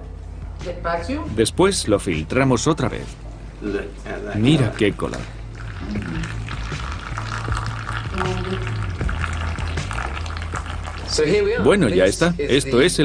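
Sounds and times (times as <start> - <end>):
liquid trickling through paper filter: 4.7 - 12.0
background music with bass line: 5.5 - 12.4.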